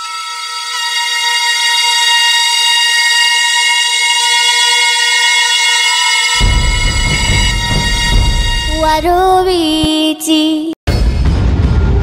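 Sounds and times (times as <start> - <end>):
synthesized drone: 0.0 - 9.9.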